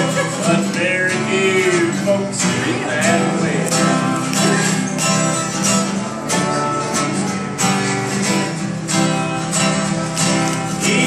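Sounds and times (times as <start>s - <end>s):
man singing: 0.0s - 4.9s, 10.6s - 11.0s
strummed acoustic guitar: 0.0s - 11.0s.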